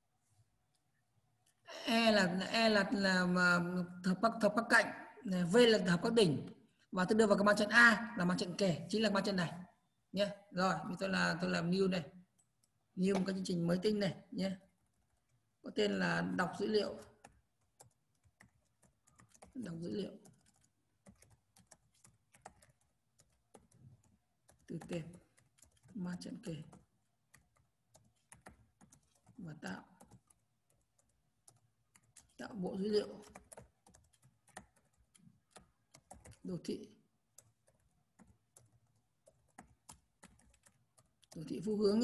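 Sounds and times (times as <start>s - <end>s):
computer keyboard typing: 16.5s - 42.0s.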